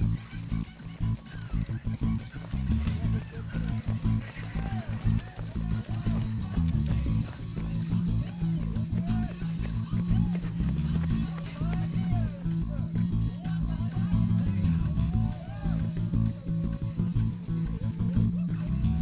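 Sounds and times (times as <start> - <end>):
guitar music with bass: 0.0 - 19.0.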